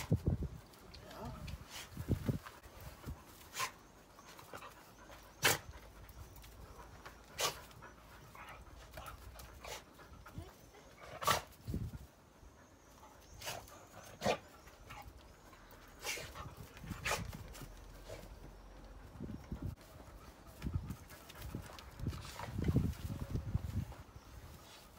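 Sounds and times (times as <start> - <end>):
dogs panting: 1.6 - 24.9.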